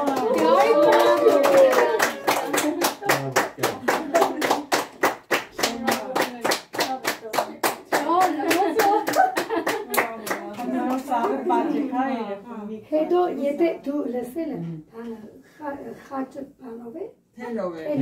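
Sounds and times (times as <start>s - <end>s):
hands clapping fast: 0.0s - 11.4s.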